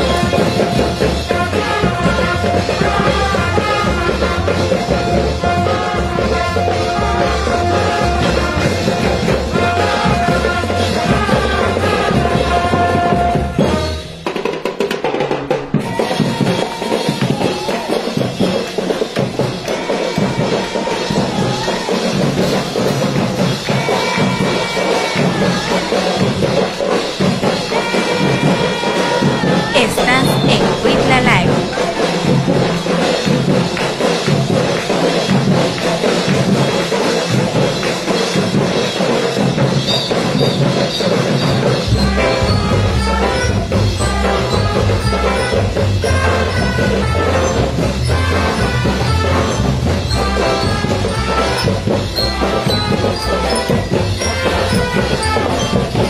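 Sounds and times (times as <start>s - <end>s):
drums keeping a steady beat: 0.0s - 56.0s.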